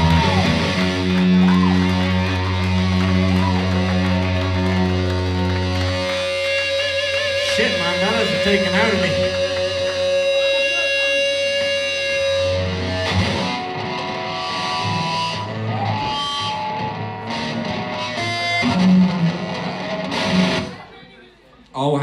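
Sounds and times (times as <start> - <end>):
live band playing: 0.0 - 20.9
electric guitar: 0.0 - 21.0.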